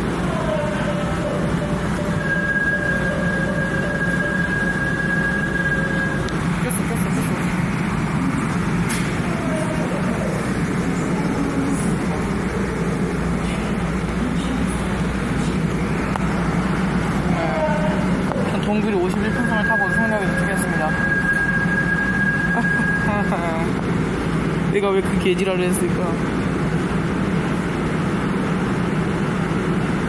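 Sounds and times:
electric train rumble: 0.0 - 30.0.

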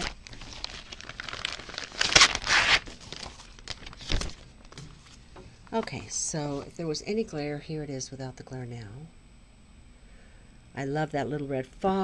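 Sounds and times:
plastic packaging crinkling: 0.0 - 5.2.

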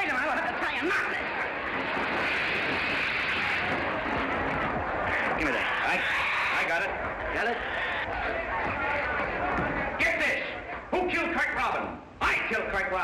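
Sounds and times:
hubbub of voices: 0.0 - 13.0
fire hose spraying water: 1.5 - 4.1.

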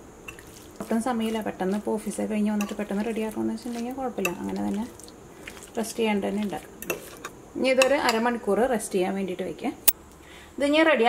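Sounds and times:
fork stirring chicken in dish: 0.3 - 8.2
woman talking: 0.8 - 5.0, 5.8 - 6.7, 7.6 - 9.8, 10.6 - 11.0.

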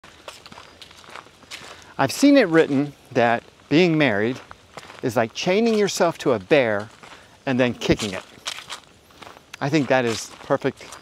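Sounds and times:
footsteps on paved path: 0.0 - 11.0.

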